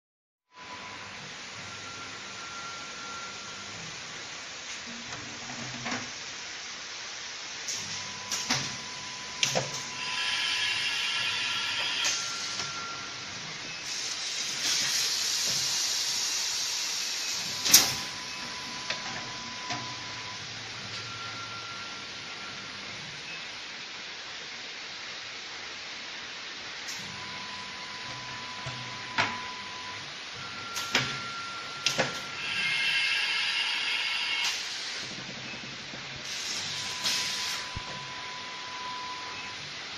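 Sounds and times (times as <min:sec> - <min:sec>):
machine hissing: 0:07.6 - 0:18.8, 0:30.7 - 0:38.3
short beeps: 0:36.6 - 0:39.6.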